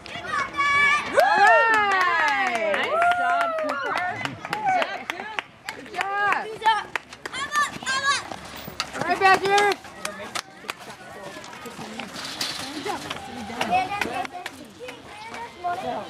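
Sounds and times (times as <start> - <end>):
children calling and chattering: 0.0 - 2.7, 3.3 - 16.0.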